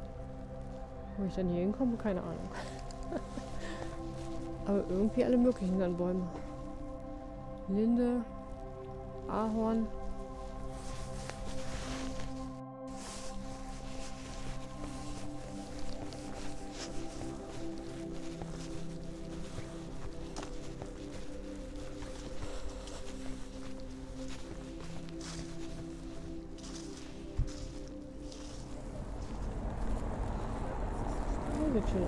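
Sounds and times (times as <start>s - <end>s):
slow sustained music chords: 0.0s - 32.0s
faint footsteps: 1.7s - 7.7s, 8.3s - 32.0s.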